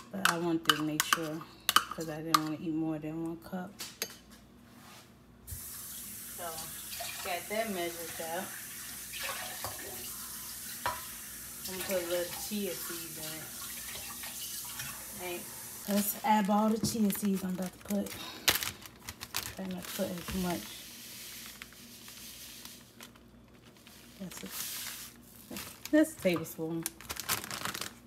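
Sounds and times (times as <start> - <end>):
plastic pouch rustling: 15.8 - 28.0.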